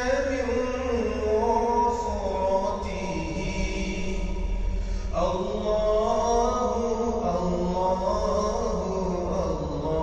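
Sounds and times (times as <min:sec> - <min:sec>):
chanted vocal music: 0:00.0 - 0:10.0
low steady hum: 0:00.0 - 0:10.0.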